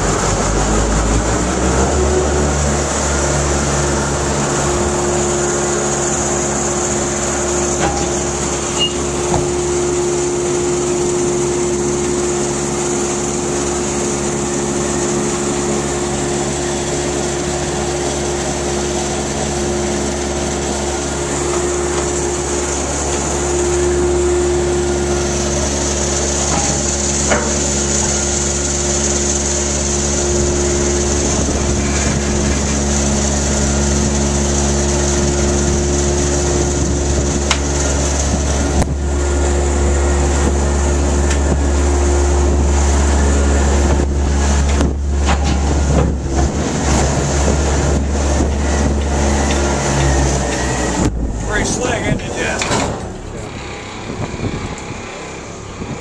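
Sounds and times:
belt conveyor humming: 0.0 - 56.0.

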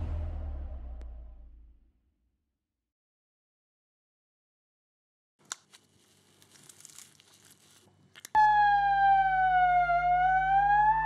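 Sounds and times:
man imitating a siren: 8.4 - 11.0.

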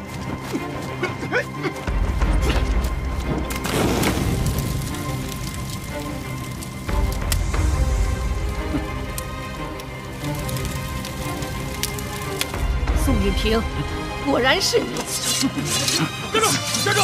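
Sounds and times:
dramatic score music: 0.0 - 17.0
fire crackling: 0.0 - 17.0.

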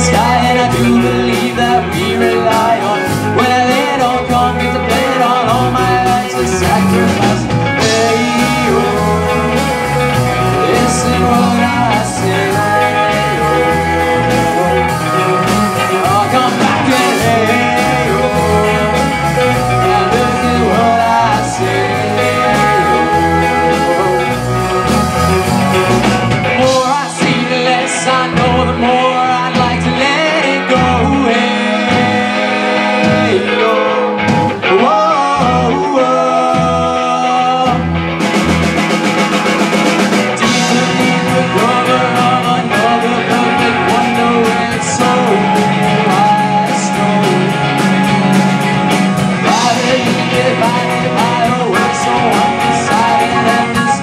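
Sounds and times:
drum kit beat: 0.0 - 35.8, 37.6 - 54.0
male lead vocal singing: 0.0 - 38.0, 40.2 - 54.0
bass guitar: 0.0 - 54.0
electric guitars: 0.0 - 54.0.

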